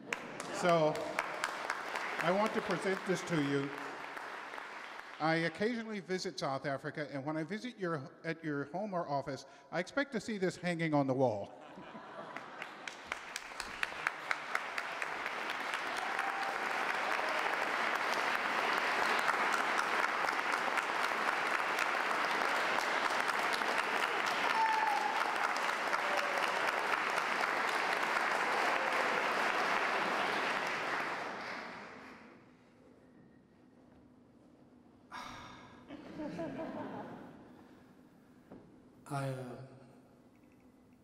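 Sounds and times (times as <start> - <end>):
audience applause: 0.0 - 5.6, 12.3 - 32.3.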